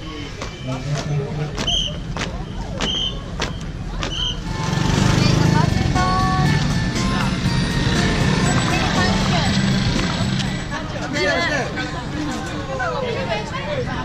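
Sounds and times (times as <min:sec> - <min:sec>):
motorbike engines running: 0:00.3 - 0:14.0.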